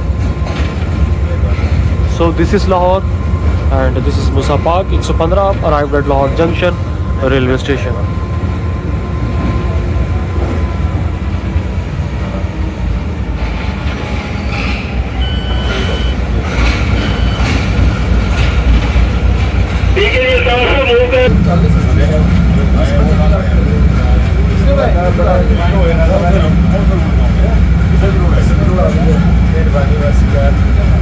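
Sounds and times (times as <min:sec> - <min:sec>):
diesel locomotive rumble: 0:00.0 - 0:31.0
crowd voices: 0:19.8 - 0:31.0.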